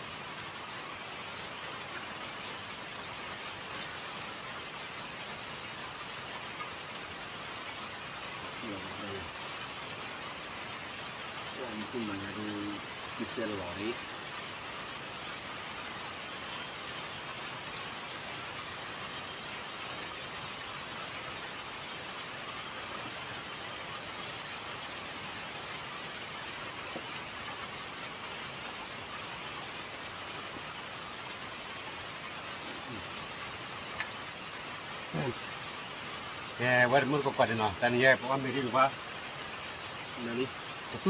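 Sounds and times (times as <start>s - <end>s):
steady rain falling: 0.0s - 41.0s.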